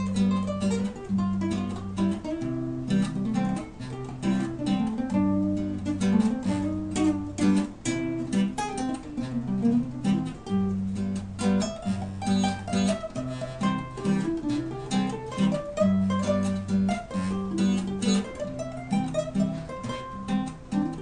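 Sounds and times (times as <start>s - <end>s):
two guitars strumming chords: 0.0s - 21.0s.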